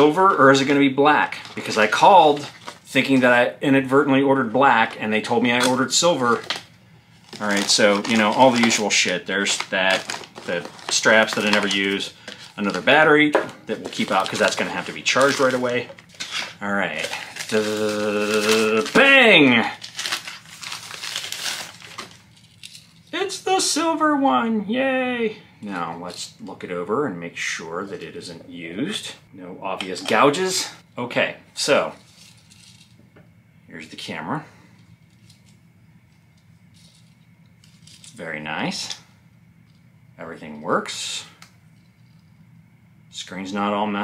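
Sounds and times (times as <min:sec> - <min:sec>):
plastic wrapping crinkling: 0:01.2 - 0:03.2, 0:05.5 - 0:23.2.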